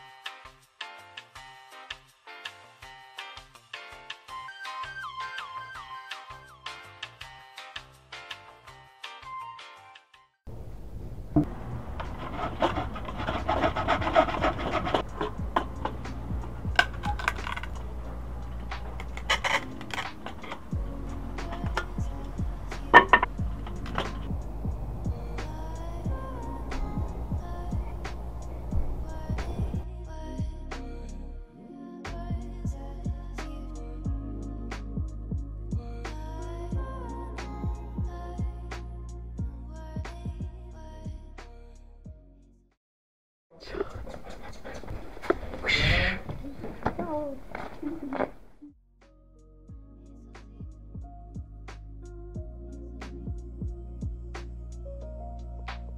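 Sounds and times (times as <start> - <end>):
dog panting: 12.0 - 15.9, 43.6 - 47.0
camera handling scuffling: 16.8 - 17.8, 46.6 - 48.4.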